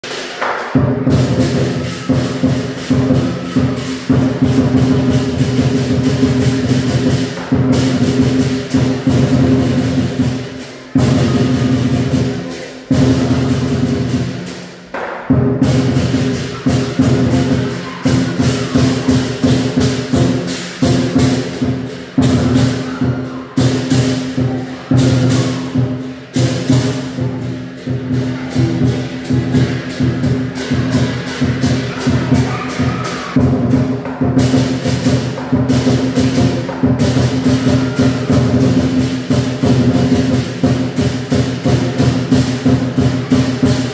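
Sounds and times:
clashing cymbals: 0.0 - 43.9
large drum beaten fast: 0.0 - 43.9.

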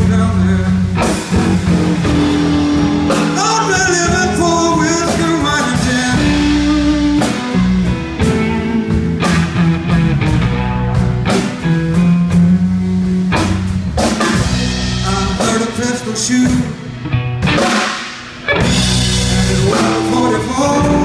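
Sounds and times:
blues-rock band playing: 0.0 - 21.0
long held guitar notes: 0.0 - 21.0.

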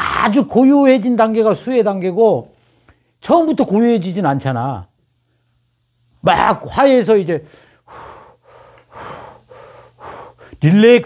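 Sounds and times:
man exhaling airy breaths: 7.5 - 10.6.

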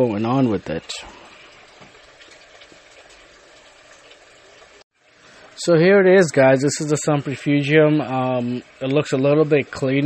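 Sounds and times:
aquarium water hissing: 0.0 - 10.0.

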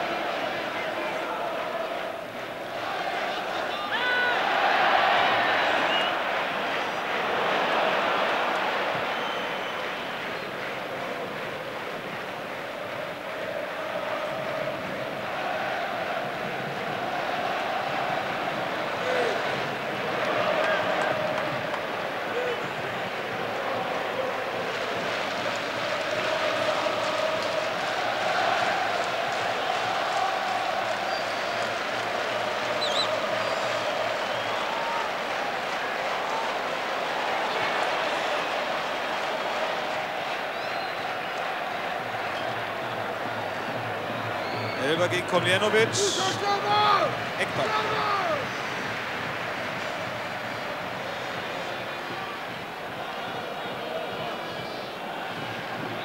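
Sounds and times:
stadium crowd chanting and singing: 0.0 - 56.0.

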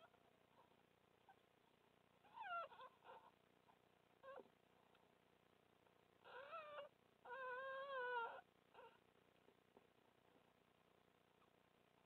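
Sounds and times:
fox cubs mewing and whimpering: 2.2 - 4.6, 6.2 - 9.1.

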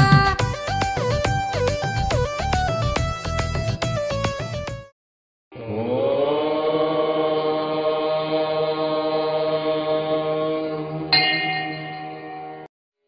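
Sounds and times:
chanting long held note: 5.6 - 12.1.

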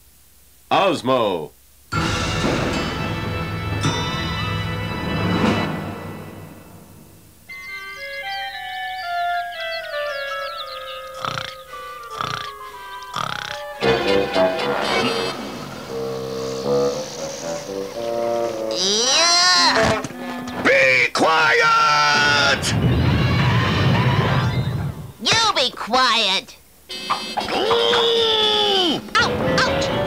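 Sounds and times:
sharp knocks: 2.0 - 4.6
bouncy rhythmic music: 2.0 - 6.6, 7.5 - 20.6
cartoon animal cries: 8.9 - 13.8, 18.7 - 20.0, 27.1 - 29.0
falling run of musical notes: 13.7 - 18.8.

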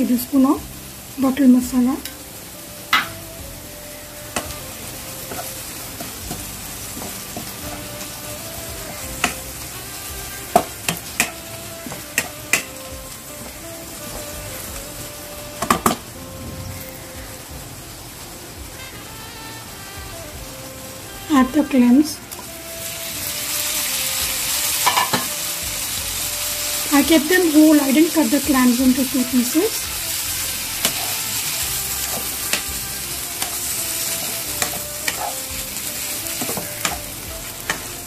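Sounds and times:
spice frying in oil: 0.0 - 38.0
spatula knocking and scraping pan: 24.8 - 25.3, 30.8 - 32.8, 33.4 - 35.6.

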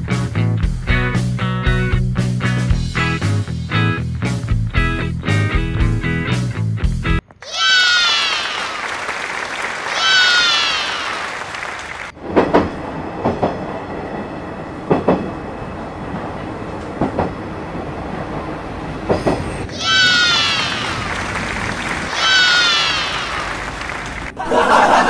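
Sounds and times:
train wheels clicking over rail joints: 12.2 - 19.7.

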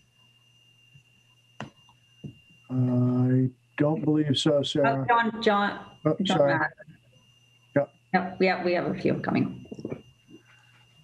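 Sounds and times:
faint high-pitched whine: 0.0 - 11.0
low hum: 2.7 - 7.0, 7.6 - 10.0.

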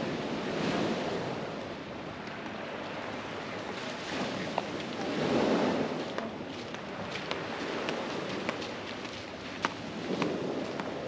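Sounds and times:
sea surf: 0.0 - 6.2
wind: 0.0 - 11.0
wind noise on microphone: 3.2 - 11.0.

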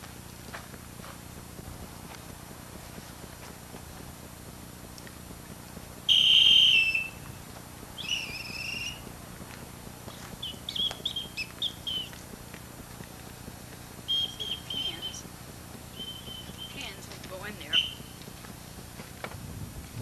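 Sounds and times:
bird chirps: 6.1 - 7.2, 8.0 - 9.0, 10.1 - 12.2, 14.1 - 15.2, 15.9 - 18.2
bird whistled calls: 6.1 - 7.3, 8.0 - 9.0, 10.1 - 12.2, 14.1 - 15.2, 15.9 - 18.2.

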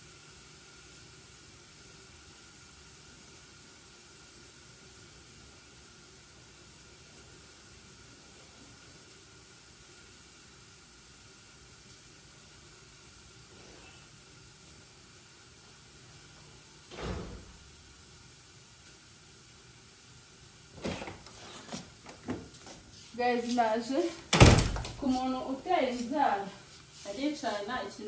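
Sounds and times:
faint room hiss: 0.0 - 28.0.

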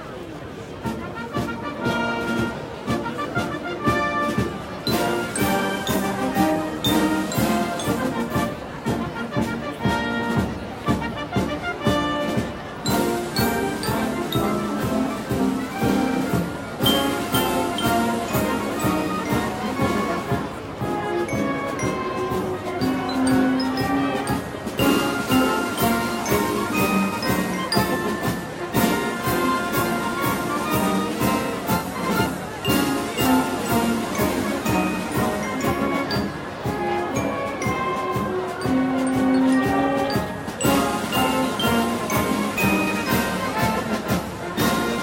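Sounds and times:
brass band music with percussion: 0.0 - 45.0.

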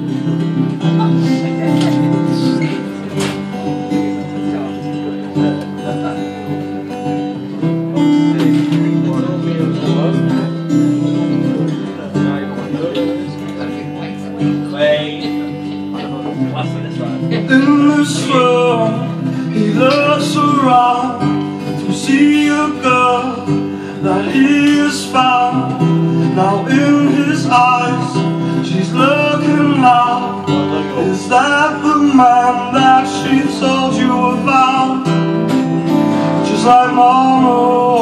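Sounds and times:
acoustic guitar strumming chords: 0.0 - 38.0
person singing: 17.2 - 38.0.

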